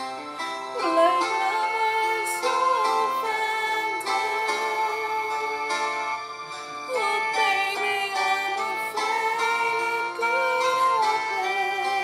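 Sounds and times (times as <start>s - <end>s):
woman singing: 0.7s - 6.3s, 6.9s - 12.0s.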